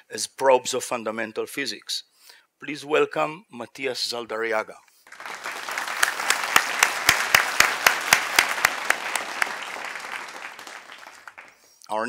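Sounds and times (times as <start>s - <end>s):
sharp individual claps: 5.1s - 11.6s
audience applauding: 5.1s - 11.7s.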